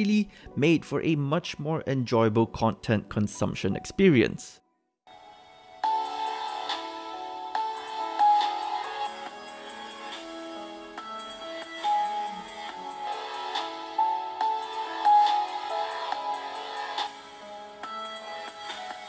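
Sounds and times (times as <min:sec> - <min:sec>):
plucked music through laptop speakers: 0:05.1 - 0:19.0.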